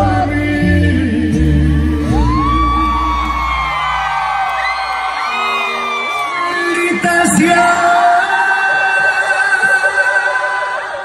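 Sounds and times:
live band music: 0.0 - 10.9
steady bass line: 0.0 - 11.0
crowd screaming and whooping: 1.5 - 11.0.

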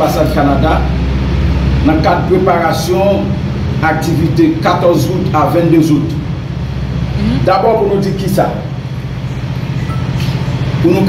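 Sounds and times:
steady low hum: 0.0 - 11.0
man talking: 7.2 - 8.7.

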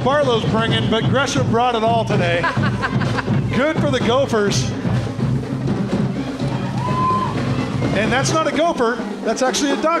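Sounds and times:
marching band playing: 0.0 - 10.0
marching drums: 0.0 - 10.0.

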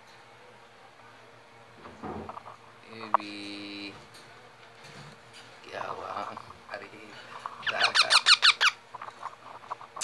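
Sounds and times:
parrot squeaky calls: 7.6 - 9.1.

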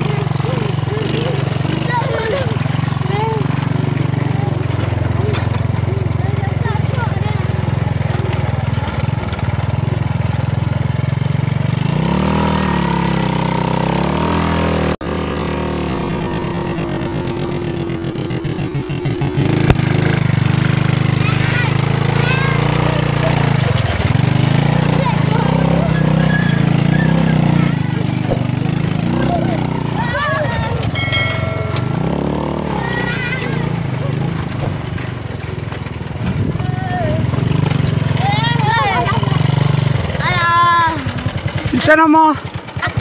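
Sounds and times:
motorcycle engine revving under load: 0.0 - 43.0
voices calling out: 0.0 - 43.0.

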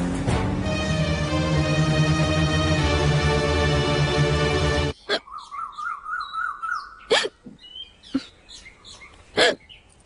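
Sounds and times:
birds chirping: 3.8 - 10.0.

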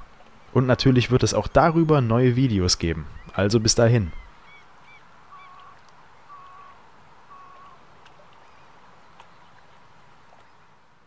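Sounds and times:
distant birds calling: 0.0 - 10.7.

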